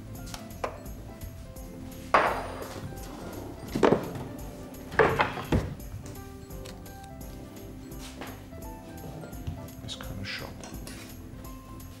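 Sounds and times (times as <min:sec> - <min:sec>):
background music: 0:00.0 - 0:12.0
kitchen things knocking on a counter: 0:02.1 - 0:02.9, 0:03.8 - 0:04.3, 0:04.9 - 0:05.8.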